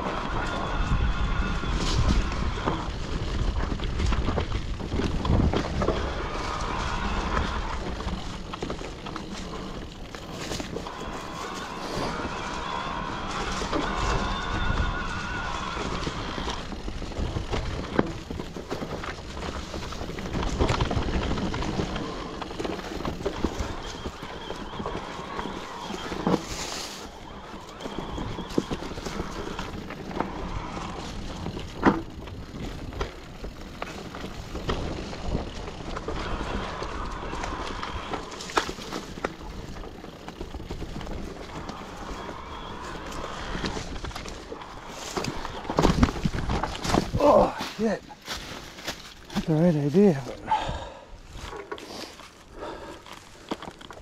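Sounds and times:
steady rumble: 0:00.0 - 0:54.0.

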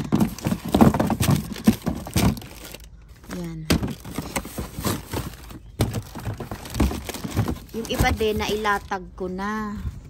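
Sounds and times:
packages and boxes being handled: 0:00.0 - 0:10.0.

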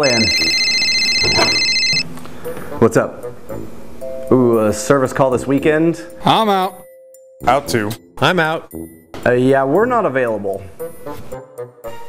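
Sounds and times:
mobile phone ringing: 0:00.0 - 0:02.1.

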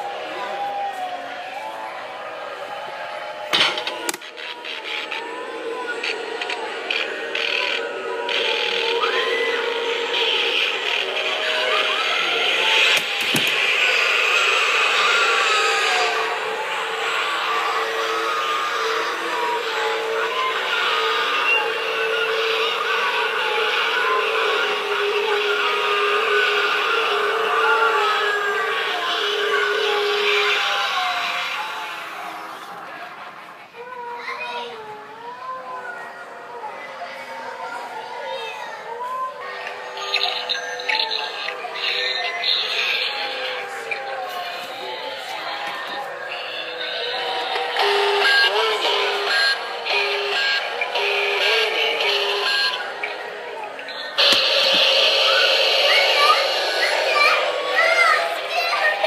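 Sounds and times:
steady held tone: 0:39.8 - 0:59.0.

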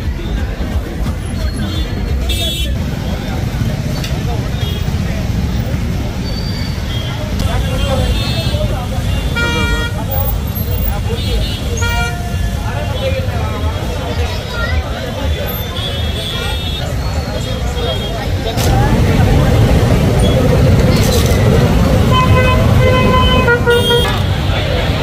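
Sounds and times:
crowd chatter: 0:00.0 - 0:25.0
low rumble of slow traffic: 0:00.0 - 0:25.0
vehicle horns honking: 0:01.4 - 0:03.2, 0:04.5 - 0:05.1, 0:06.2 - 0:13.3, 0:15.2 - 0:19.0, 0:21.3 - 0:25.0.

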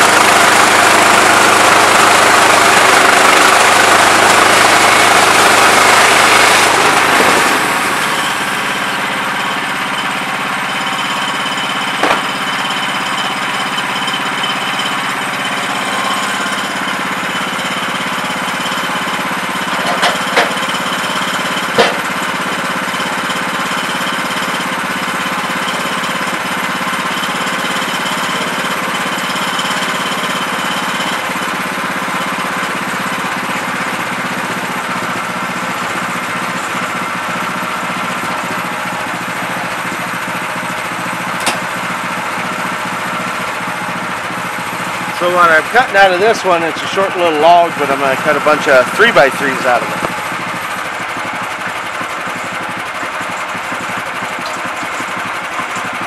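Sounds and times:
sawmill gas engine running: 0:00.0 - 0:56.0
sharp knocks: 0:12.0 - 0:12.4, 0:21.8 - 0:22.1.

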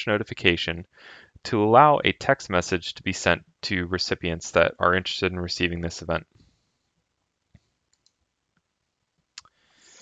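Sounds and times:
computer mouse click: 0:07.5 - 0:08.7.

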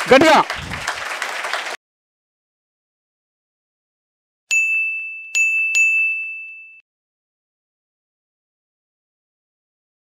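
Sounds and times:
high bell-like dings: 0:04.5 - 0:06.8.

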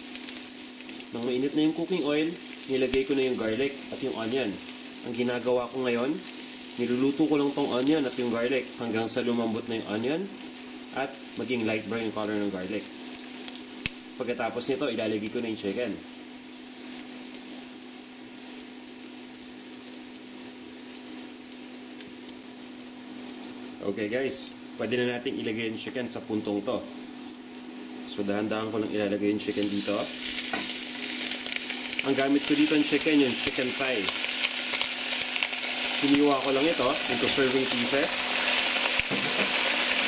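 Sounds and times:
onion and garlic sizzling in oil: 0:00.0 - 0:40.0.

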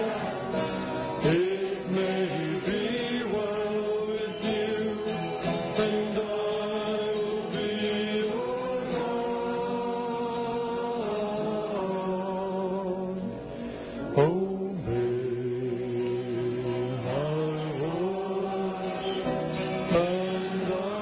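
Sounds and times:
slow chant-like singing: 0:00.0 - 0:13.3, 0:14.1 - 0:21.0.

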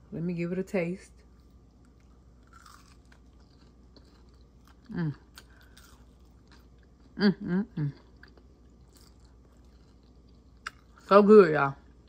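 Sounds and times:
close-up chewing: 0:01.4 - 0:07.2, 0:08.0 - 0:11.1
person humming mmm: 0:04.8 - 0:05.4, 0:07.1 - 0:08.1.

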